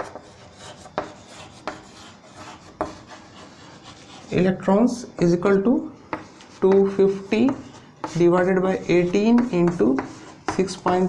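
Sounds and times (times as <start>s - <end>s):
chalk tapping on board: 0.0s - 4.3s, 6.1s - 11.0s
chalk scratching on blackboard: 0.0s - 4.7s, 6.1s - 11.0s.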